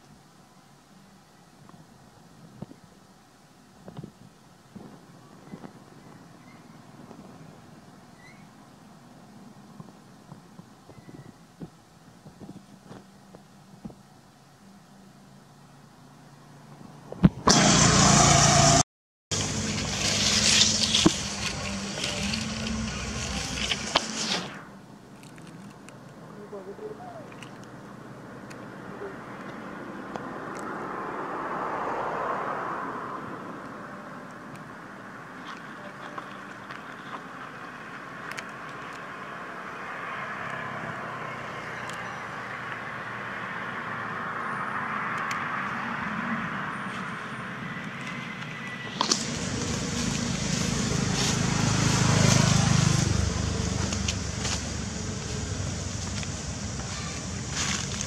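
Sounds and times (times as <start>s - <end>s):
vehicle engine rumble: 0.0s - 58.0s
road traffic rushing: 15.7s - 58.0s
tyres hissing: 17.5s - 24.8s, 48.6s - 58.0s.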